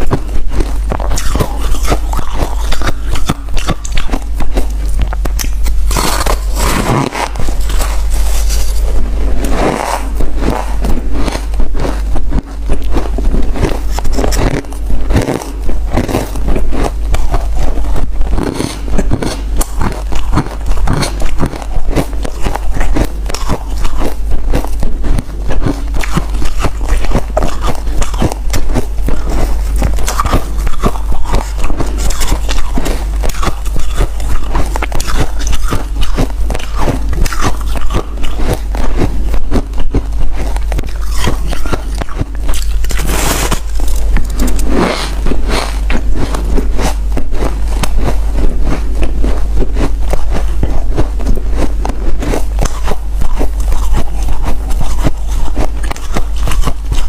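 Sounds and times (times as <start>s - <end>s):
crunching frozen ice with teeth: 0.0s - 57.0s
steady low hum: 0.0s - 57.0s.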